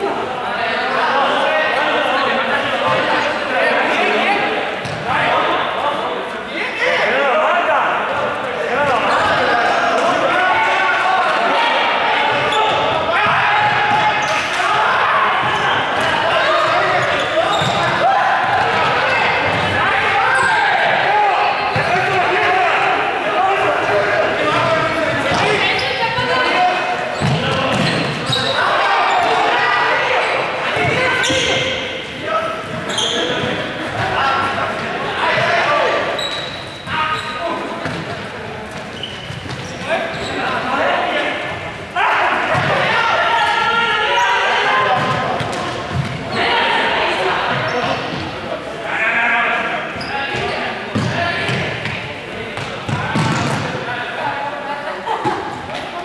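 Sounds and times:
players shouting in a hall: 0.0 - 56.0
balls bouncing on floor: 27.2 - 28.5, 52.6 - 53.7.

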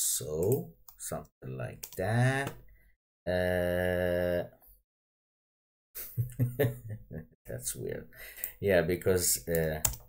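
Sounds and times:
person laughing: 6.0 - 7.2.

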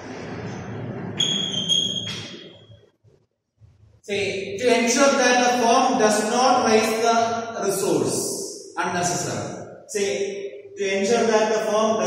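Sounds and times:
high chalk squeak: 1.1 - 2.8.

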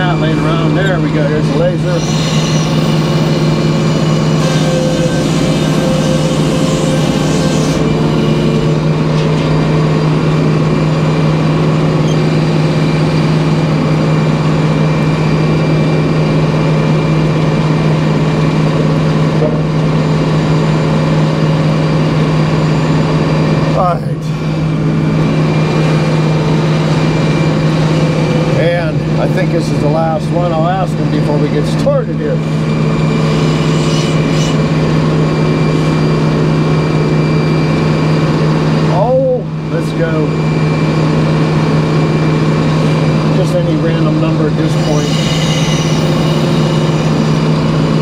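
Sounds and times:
sawmill machine hum: 0.0 - 48.0.

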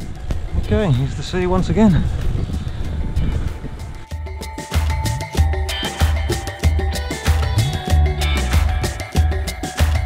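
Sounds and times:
wind buffeting microphone: 0.0 - 4.1.

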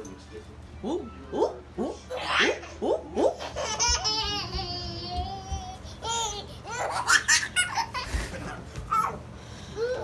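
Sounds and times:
toddler laughing and squealing: 6.0 - 8.1.

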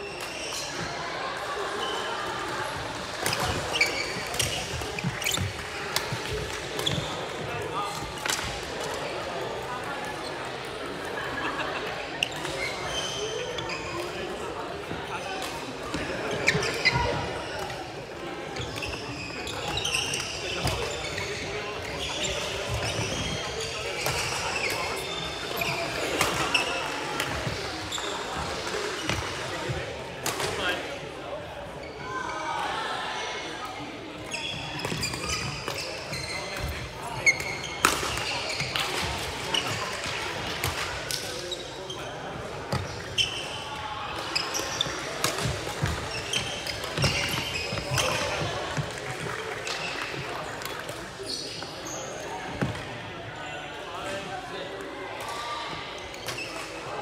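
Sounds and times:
people talking: 0.0 - 57.0.

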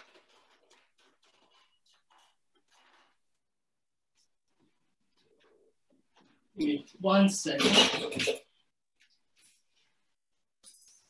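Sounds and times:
faint handling sounds: 0.0 - 6.5, 9.0 - 11.0.

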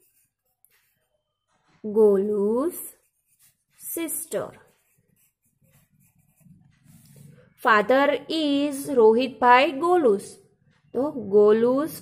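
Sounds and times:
pen scratching on paper: 0.0 - 7.6.

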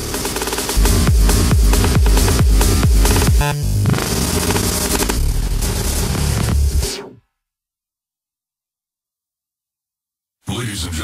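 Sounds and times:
electronic trance music: 0.0 - 7.2.

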